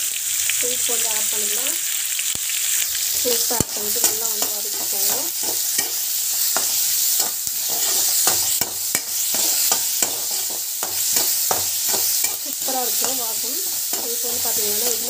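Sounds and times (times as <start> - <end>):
onions sizzling in a frying pan: 0.0 - 15.0
spatula scraping a pan: 3.2 - 15.0.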